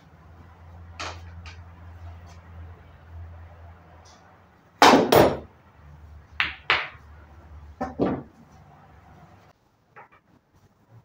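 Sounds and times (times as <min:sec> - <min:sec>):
pool balls clacking: 0:06.4 - 0:07.1, 0:07.8 - 0:08.4.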